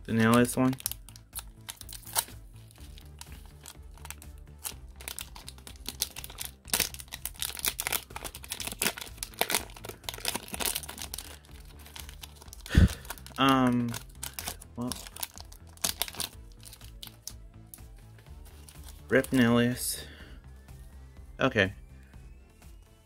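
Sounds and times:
plastic wrapper crinkling and tearing: 0:00.1 - 0:17.4, 0:18.5 - 0:19.4.

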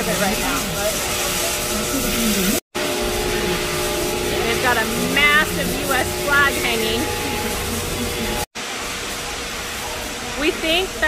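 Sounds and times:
factory machinery hissing: 0:00.0 - 0:11.0.

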